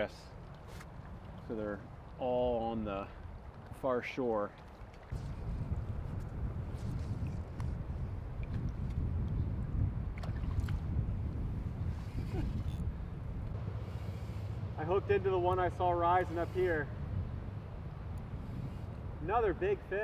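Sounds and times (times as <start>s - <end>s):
shallow stream flowing: 0.0s - 19.2s
wind rumble on microphone: 4.6s - 20.0s.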